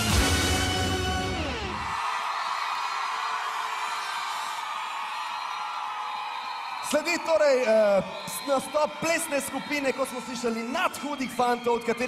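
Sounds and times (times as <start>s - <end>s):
studio audience cheering: 0.0s - 12.0s.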